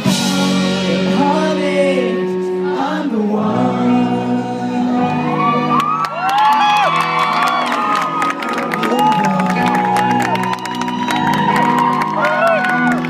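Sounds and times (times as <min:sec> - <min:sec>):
rock band holding chord: 0:00.0 - 0:05.9
crowd cheering and screaming: 0:05.0 - 0:13.0
scattered clapping: 0:05.8 - 0:13.0.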